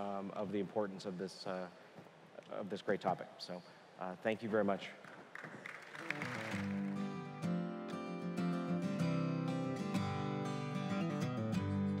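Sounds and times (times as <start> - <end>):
strummed acoustic guitar music: 6.4 - 12.0.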